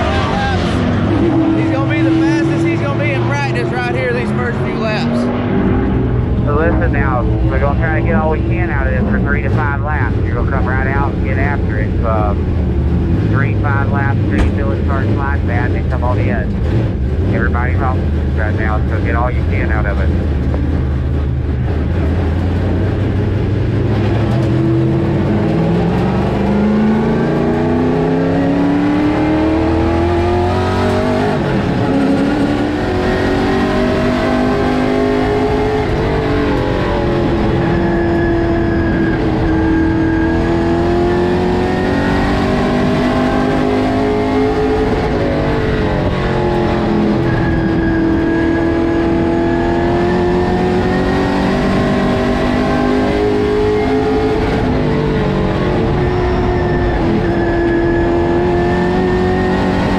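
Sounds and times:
race car engine revving: 0.0s - 59.9s.

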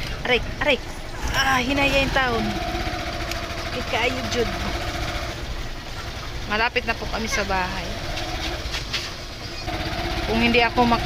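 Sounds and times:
small motorcycle engine running: 0.0s - 11.0s.

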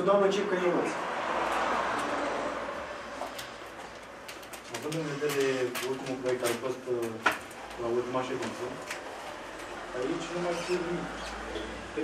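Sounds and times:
man speaking: 4.7s - 8.8s.

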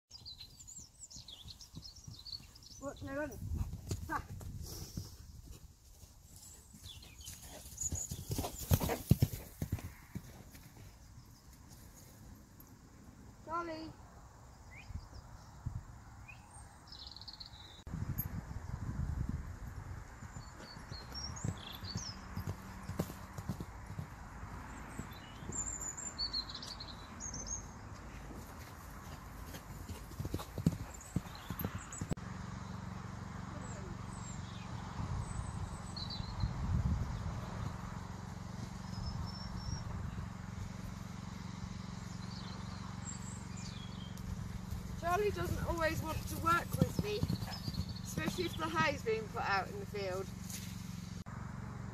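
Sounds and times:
birds chirping: 0.1s - 5.6s, 6.3s - 12.8s, 13.4s - 18.3s, 20.2s - 51.2s
hooves thudding on grass: 0.2s - 12.4s, 19.9s - 27.0s, 27.7s - 32.2s, 36.9s - 51.2s.

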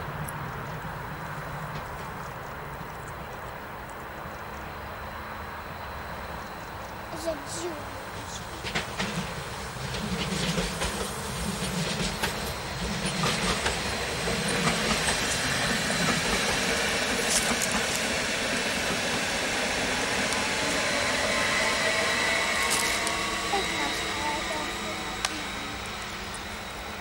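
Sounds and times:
steady train whine: 0.0s - 27.0s
train wheels clicking over rail joints: 6.5s - 27.0s.

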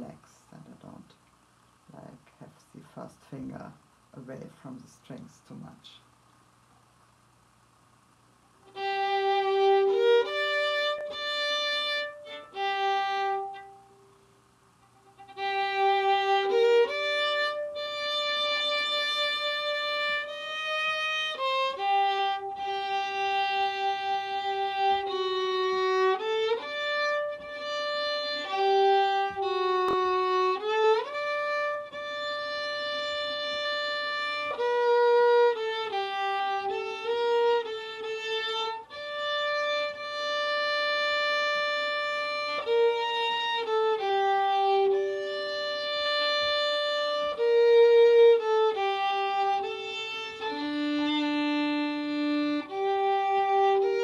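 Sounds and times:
solo violin playing: 8.6s - 14.0s, 15.0s - 54.0s.

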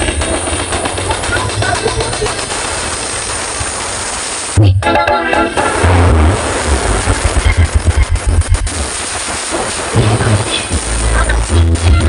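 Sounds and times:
crowd voices: 0.0s - 2.9s
loud electronic dance music: 0.0s - 3.2s, 4.8s - 12.0s.

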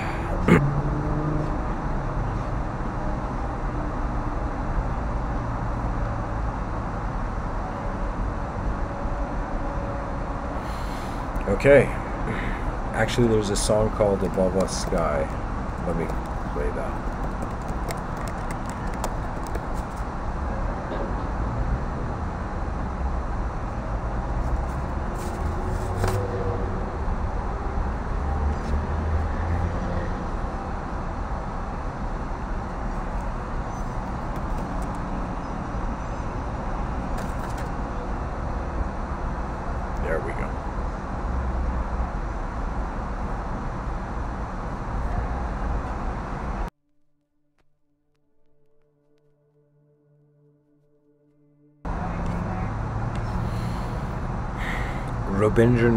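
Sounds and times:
loud rushing street noise: 0.0s - 46.7s, 51.9s - 55.9s.

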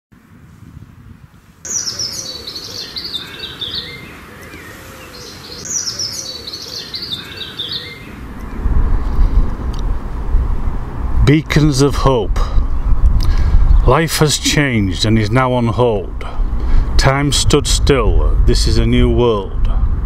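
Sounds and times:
songbird warbling: 1.6s - 8.6s
low rumble: 8.0s - 20.0s.

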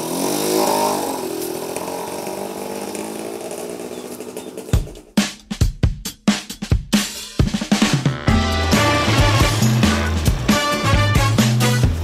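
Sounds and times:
motorcycle engine running: 0.0s - 5.4s, 8.2s - 12.0s
drum beat: 4.2s - 12.0s.

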